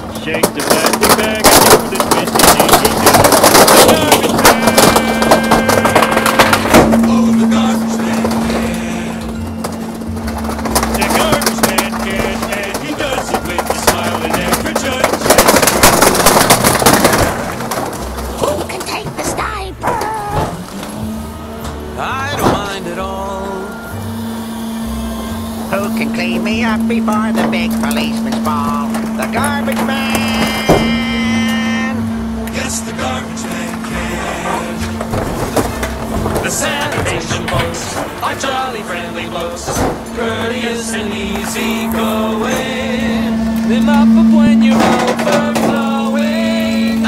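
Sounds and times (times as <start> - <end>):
plastic toys crunching and cracking: 0.0 - 47.0
truck engine and hydraulic hum: 0.0 - 47.0.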